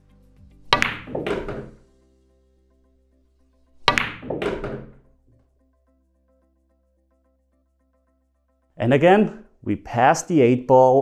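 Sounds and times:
soft background music: 0:00.0 - 0:11.0
cue striking pool balls: 0:00.7 - 0:01.8, 0:03.8 - 0:05.1
pool balls knocking: 0:00.7 - 0:01.8, 0:03.8 - 0:05.1.

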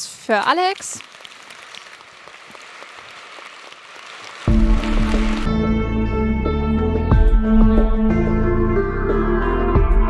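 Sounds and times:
audience applauding: 0:01.1 - 0:05.6
loud music with deep bass: 0:04.5 - 0:10.0.

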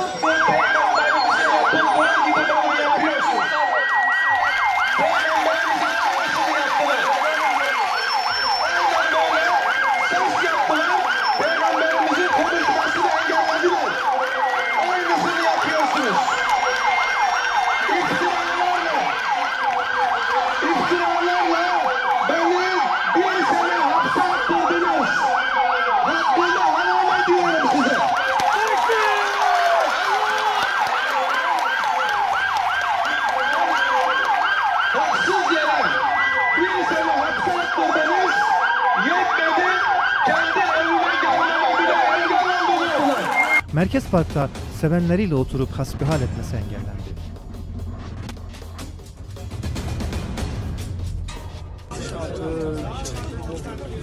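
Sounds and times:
siren fast yelp: 0:00.0 - 0:43.7
siren steady high tone: 0:00.0 - 0:43.7
siren wails rising and falling: 0:00.0 - 0:43.7.

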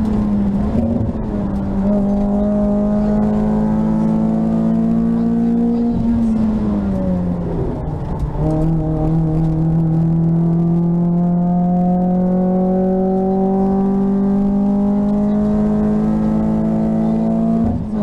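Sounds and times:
gear change: 0:00.0 - 0:18.0.

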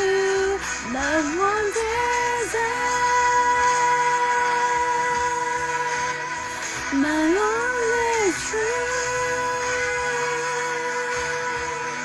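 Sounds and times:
backing track: 0:00.0 - 0:12.0.

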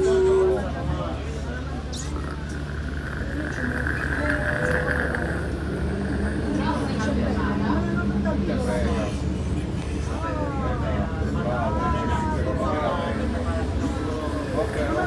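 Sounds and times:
electric tram hum and whine: 0:00.0 - 0:15.0
faint voices: 0:00.0 - 0:15.0.

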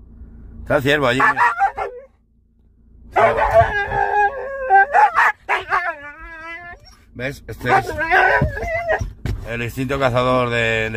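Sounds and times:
dog howling: 0:01.2 - 0:02.1, 0:03.2 - 0:06.9, 0:07.6 - 0:09.1.

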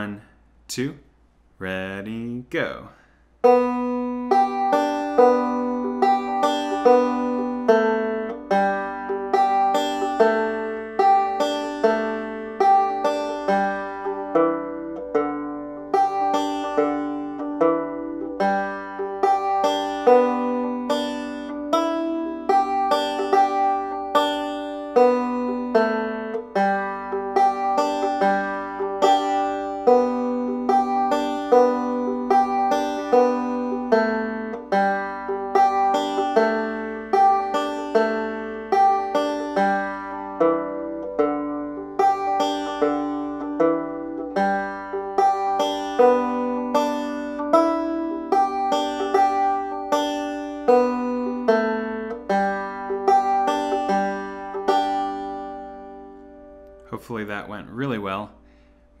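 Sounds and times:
banjo picked slowly: 0:03.0 - 0:59.0.

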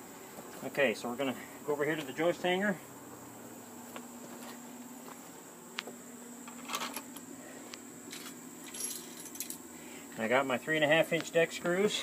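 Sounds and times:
crickets chirping: 0:00.0 - 0:12.0
screws clinking in a hand: 0:08.1 - 0:09.6.

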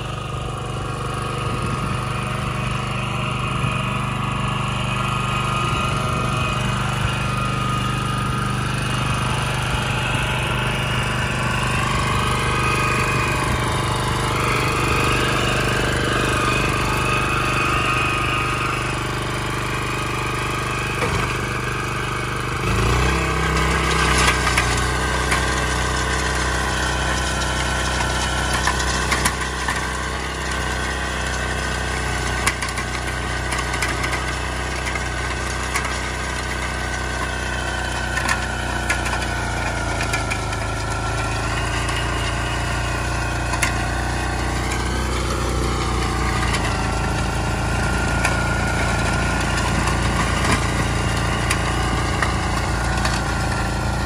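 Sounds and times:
tiller engine running: 0:00.0 - 0:54.0.

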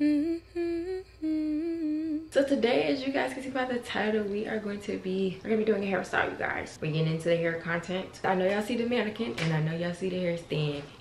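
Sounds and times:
person humming a tune: 0:00.0 - 0:02.4.

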